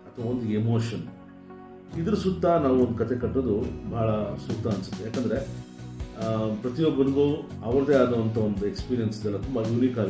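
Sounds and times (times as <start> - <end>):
soft guitar music: 0.0 - 10.0
man speaking: 1.9 - 5.5, 6.2 - 10.0.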